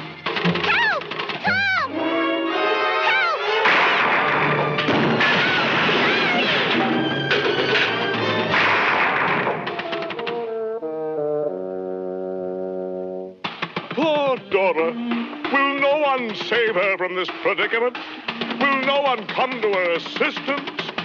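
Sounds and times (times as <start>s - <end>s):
orchestral music: 1.4s - 8.9s, 9.6s - 13.4s
cartoon crashes and smashing: 3.5s - 9.8s
brass held chords: 10.4s - 13.4s.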